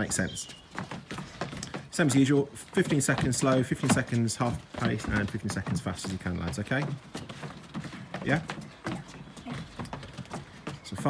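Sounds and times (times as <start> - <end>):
footballs tapping on wooden decking: 0.0 - 11.0.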